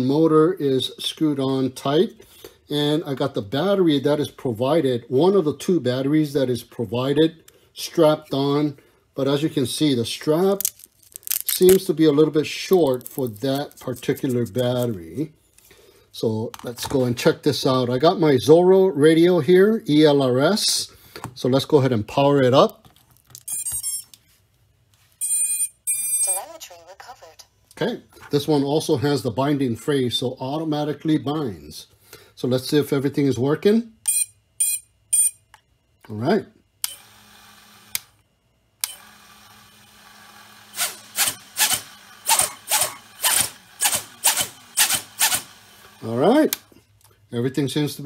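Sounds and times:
drone motors revving: 39.8s - 46.1s.

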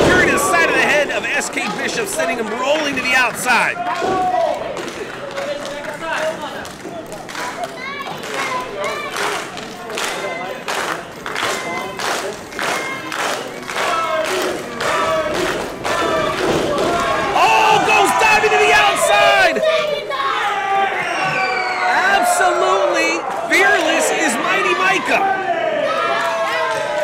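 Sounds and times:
crowd clapping in rhythm: 0.0s - 19.8s
crowd shouting and cheering: 0.0s - 27.0s.

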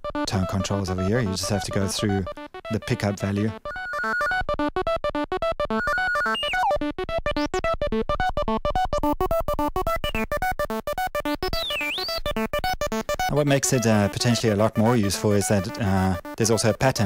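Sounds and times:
synth sequencer pattern of short notes: 0.0s - 17.0s.

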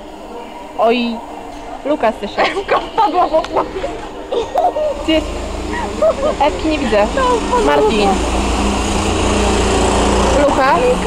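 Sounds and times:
go-kart engines droning: 0.0s - 11.0s.

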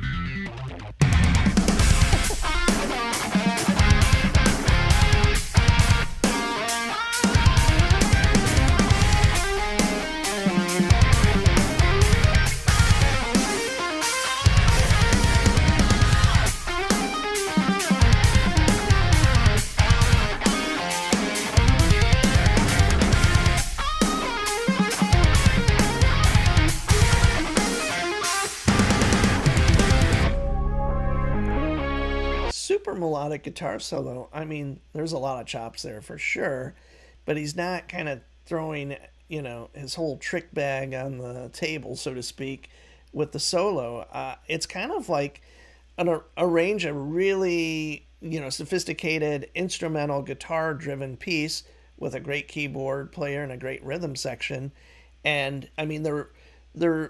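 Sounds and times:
drums and bass: 0.0s - 32.5s
electric guitar solo: 0.0s - 32.5s.

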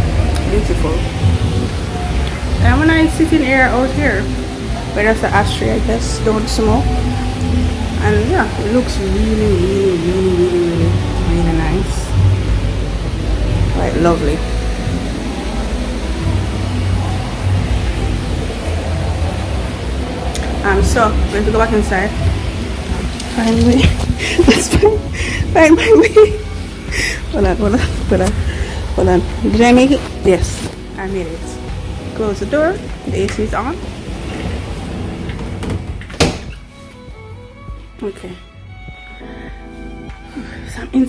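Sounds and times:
low rumbling background noise: 0.0s - 41.0s
outdoor background noise: 0.0s - 41.0s
door shutting with a thunk: 35.3s - 36.7s.

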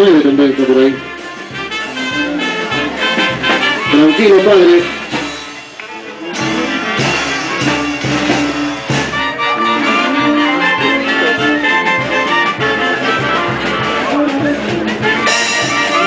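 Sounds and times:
brass band playing dance music: 0.0s - 16.0s.

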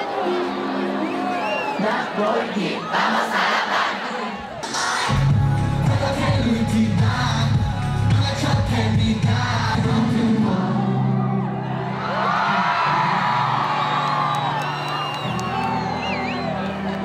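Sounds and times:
crowd singing along: 0.0s - 13.0s
live concert music: 0.0s - 17.0s
audience whooping: 11.1s - 17.0s.

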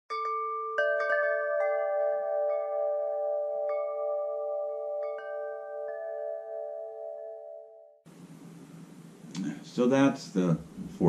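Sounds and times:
wind chimes ringing: 0.1s - 7.8s.

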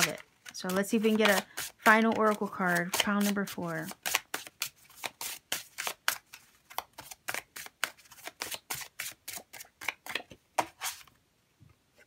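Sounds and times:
cards being shuffled: 0.0s - 11.1s.

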